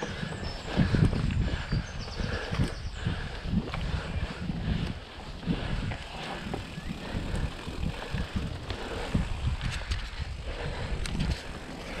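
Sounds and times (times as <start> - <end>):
bike rattling over bumps: 0.0 - 12.0
bike tyres on dirt: 0.0 - 12.0.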